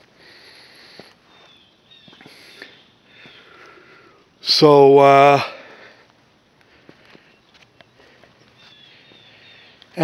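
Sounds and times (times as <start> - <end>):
breathing and sniff: 0.0 - 1.6, 2.2 - 4.3.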